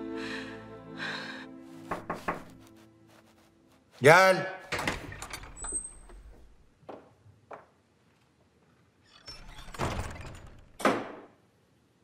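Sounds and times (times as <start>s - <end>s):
door swinging with squeak: 4.7s - 6.6s, 9.0s - 10.9s.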